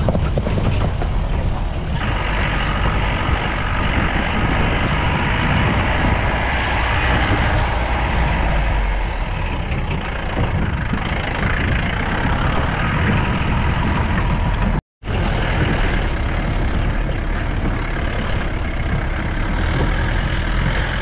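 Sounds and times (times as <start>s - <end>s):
off-road vehicle engine under load: 0.0s - 21.0s
road noise: 0.0s - 21.0s
wind noise: 0.0s - 21.0s.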